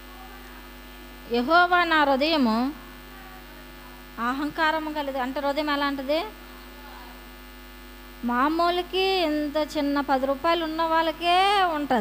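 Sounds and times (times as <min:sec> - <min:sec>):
electrical mains hum: 0:00.0 - 0:12.0
woman speaking: 0:01.2 - 0:07.2, 0:08.2 - 0:12.0.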